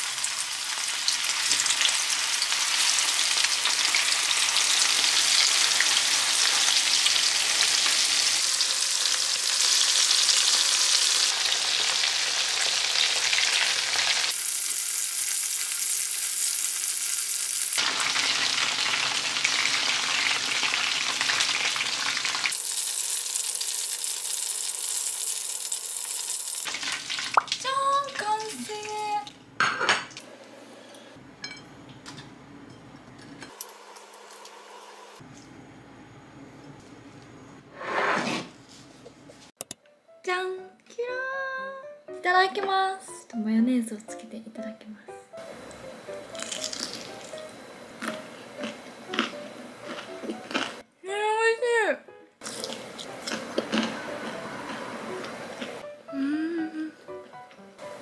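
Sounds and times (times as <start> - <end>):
chicken deep-frying in oil: 0.0 - 28.9.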